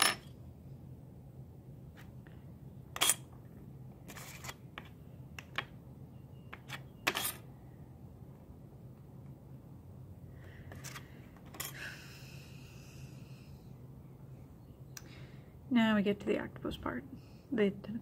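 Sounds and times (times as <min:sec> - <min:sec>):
faint low hum: 0:00.0 - 0:18.0.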